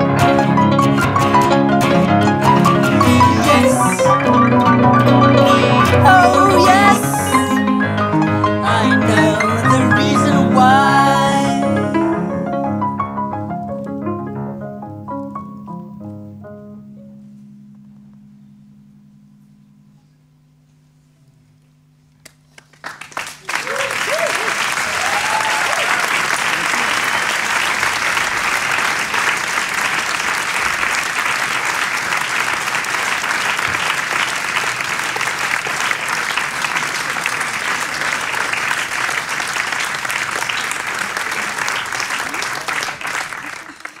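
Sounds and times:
audience applause: 0.0 - 11.5, 22.2 - 44.0
audience whooping: 2.4 - 7.9, 22.6 - 44.0.

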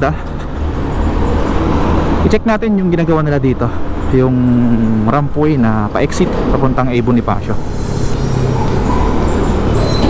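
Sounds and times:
truck running alongside: 0.0 - 10.0.

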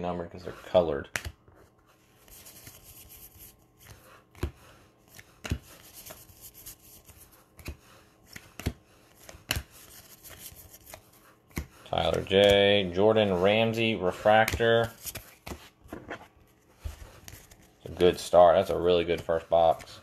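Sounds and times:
cards rustling: 0.7 - 20.0.

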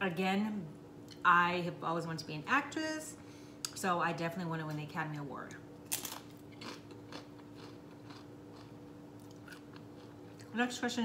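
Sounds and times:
person chewing food: 5.9 - 10.5.

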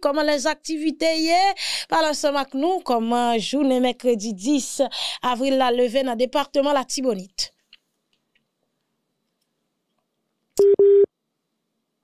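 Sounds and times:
short low telephone beeps: 10.6 - 11.1.

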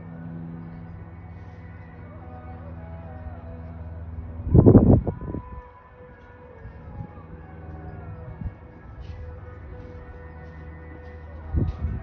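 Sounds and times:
music with held notes and glides: 0.0 - 12.0.

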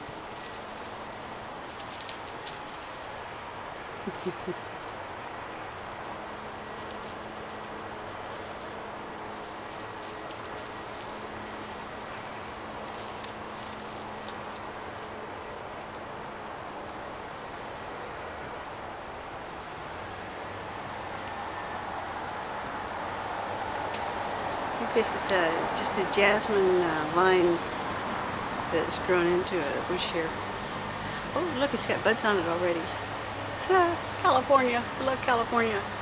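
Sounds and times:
cat rustling through bush branches: 0.0 - 33.4.

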